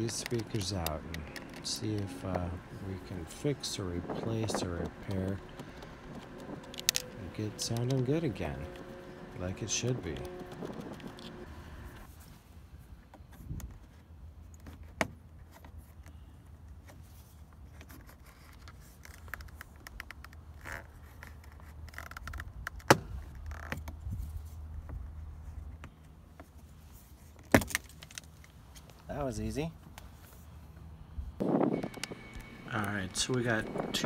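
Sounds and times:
clicks and scrapes: 0.0 - 12.1
steady low hum: 0.0 - 13.6, 28.4 - 34.0
plastic clips snapping loose: 4.8 - 8.0.

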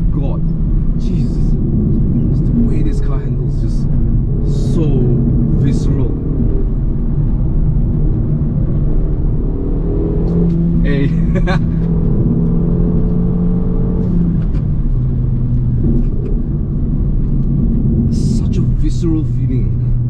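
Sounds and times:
car engine drone: 0.0 - 20.0
road rumble: 0.0 - 20.0.

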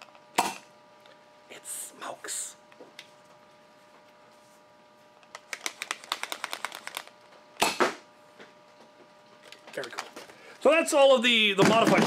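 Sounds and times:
toy blaster mechanism clicking: 5.5 - 7.1.

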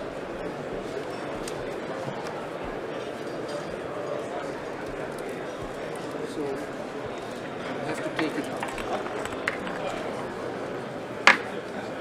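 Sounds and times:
people talking indistinctly: 0.3 - 12.0.

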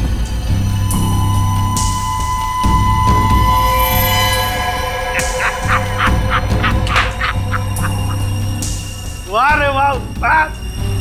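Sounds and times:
held drone: 0.0 - 9.3
short sharp musical stabs: 0.9 - 9.4.

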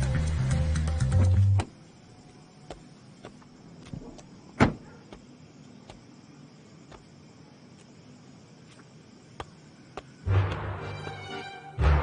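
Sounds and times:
car door shutting thud: 4.6 - 4.8.

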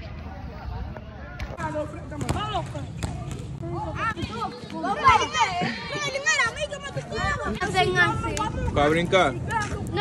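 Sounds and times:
children calling and chattering: 0.0 - 10.0.

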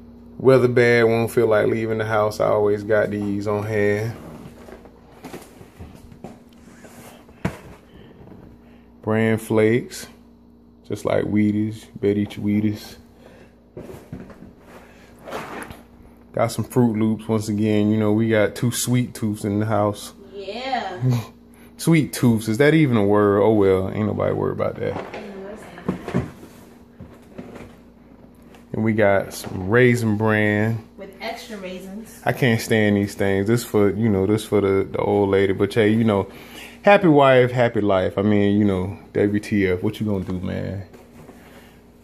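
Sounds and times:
cardboard boxes handling noise: 4.2 - 8.6, 13.7 - 15.9, 24.8 - 28.7
cardboard boxes handled: 13.7 - 15.8.

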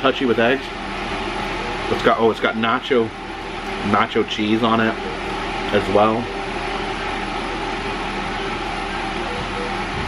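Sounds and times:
machine hiss and hum: 0.0 - 10.0.

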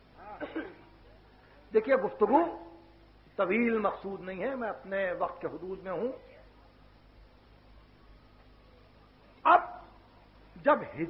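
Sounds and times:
tape hiss and hum: 0.0 - 11.0
dog bark: 9.5 - 10.0.

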